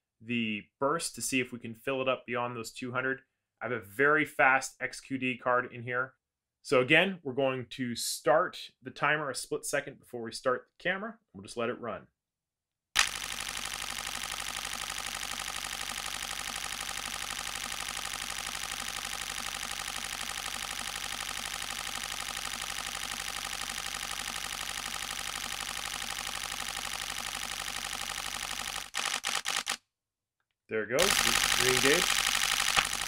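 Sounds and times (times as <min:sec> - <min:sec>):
camera shutter burst: 0:13.0 - 0:29.8, 0:31.0 - 0:33.0.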